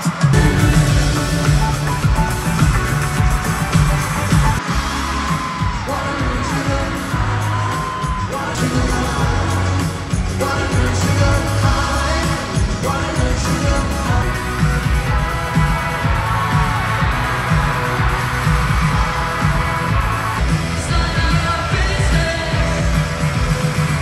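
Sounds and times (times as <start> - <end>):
live pop band with drums and guitar: 0.0 - 24.0.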